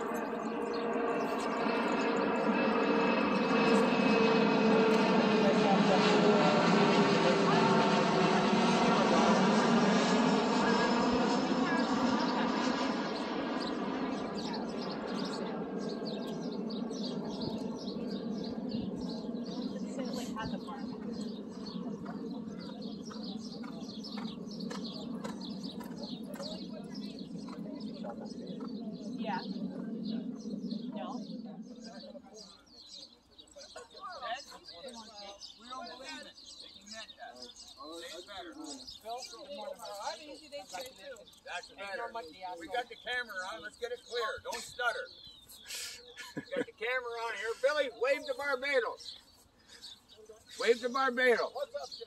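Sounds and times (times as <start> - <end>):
jet aircraft passing overhead: 0.0 - 45.2, 46.3 - 49.9, 50.5 - 52.0.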